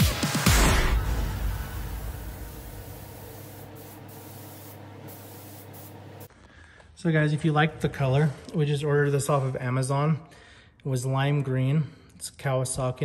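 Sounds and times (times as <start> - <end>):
paint spray gun hissing: 1.0 - 6.3.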